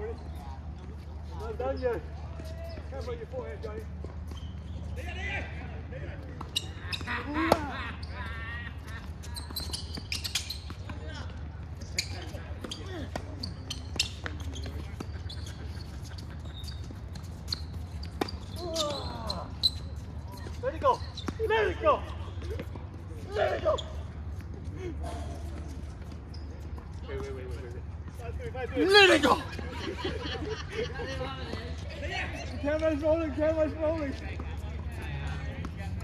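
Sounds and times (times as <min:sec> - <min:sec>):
balls bouncing on hard court: 0:06.2 - 0:24.7.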